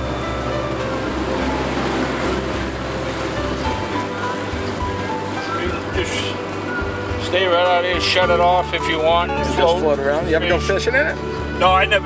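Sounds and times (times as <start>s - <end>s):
car engine droning: 0.0s - 12.0s
music: 0.0s - 12.0s
water splashing against hull: 0.0s - 12.0s.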